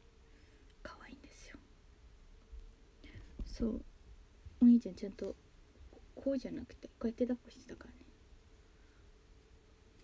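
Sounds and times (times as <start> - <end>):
woman whispering: 0.8 - 1.7.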